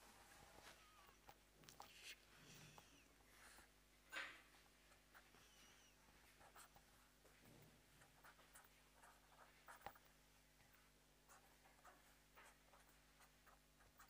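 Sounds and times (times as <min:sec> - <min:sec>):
low electrical hum: 0:00.0 - 0:14.0.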